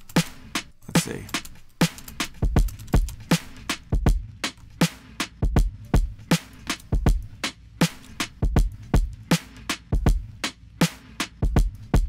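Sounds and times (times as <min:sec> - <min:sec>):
deep kick drum: 0:02.4 - 0:04.4, 0:05.4 - 0:06.2, 0:07.0 - 0:07.4, 0:08.4 - 0:09.3, 0:10.0 - 0:10.4, 0:11.4 - 0:12.0.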